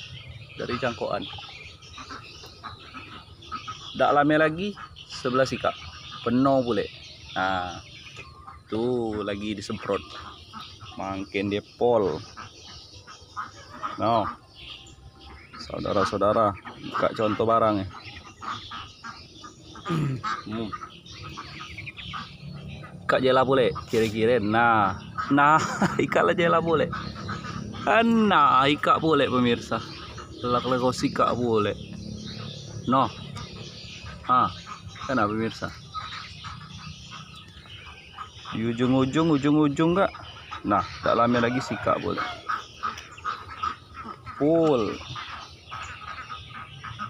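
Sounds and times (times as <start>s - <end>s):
birds chirping: 0.0s - 47.0s.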